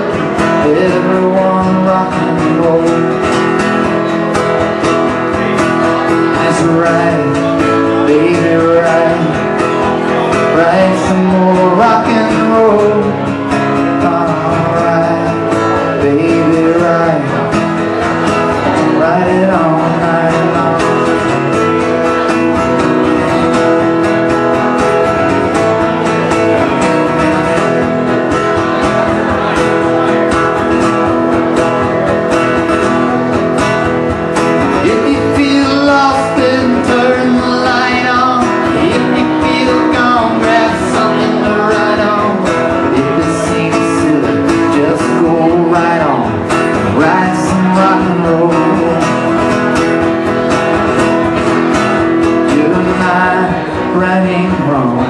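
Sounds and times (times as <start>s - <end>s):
strummed acoustic guitar: 0.0s - 55.0s.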